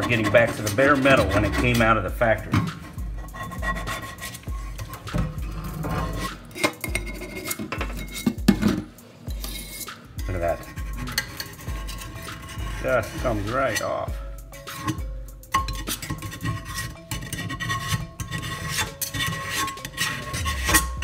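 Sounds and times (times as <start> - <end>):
skillet scraped in metal sink: 0.0 - 21.0.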